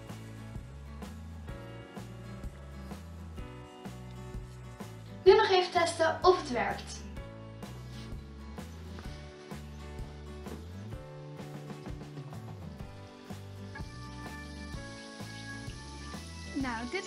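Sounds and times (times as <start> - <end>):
background music with beat: 0.0 - 5.2, 7.2 - 17.0.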